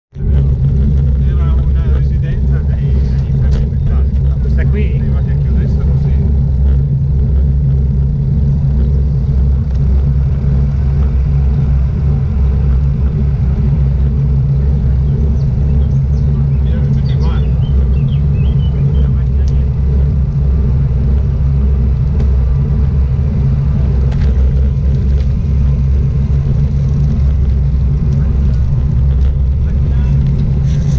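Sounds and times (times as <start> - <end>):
wind buffeting: 0.1 - 30.9
bicycle tyre noise on asphalt: 0.2 - 30.9.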